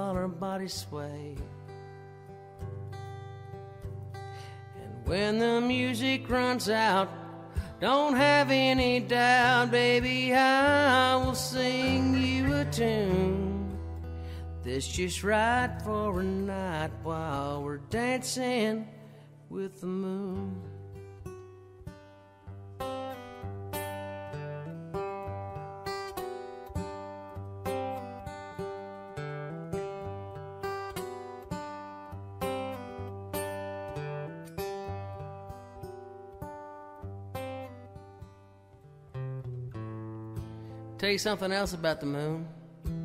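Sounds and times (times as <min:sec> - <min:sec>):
acoustic guitars playing: 0:00.0 - 0:43.0.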